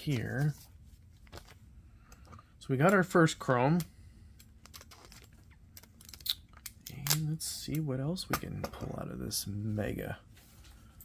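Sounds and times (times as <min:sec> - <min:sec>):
trading cards clicking and rustling: 0:01.2 - 0:09.0.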